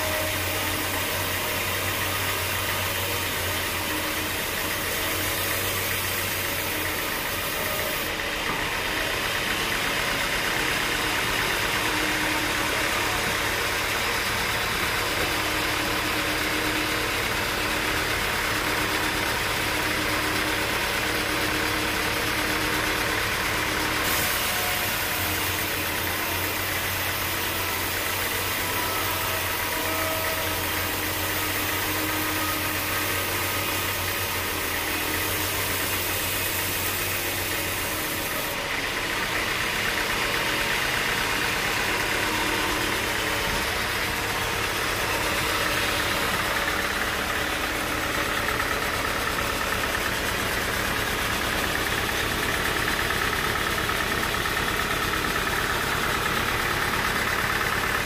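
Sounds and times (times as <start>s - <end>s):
band saw cutting wood: 0.0s - 58.0s.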